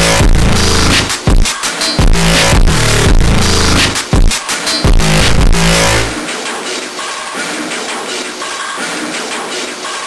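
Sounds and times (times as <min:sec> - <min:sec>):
distorted bass notes: 0:00.0 - 0:06.2
distorted trap beat: 0:00.0 - 0:10.0.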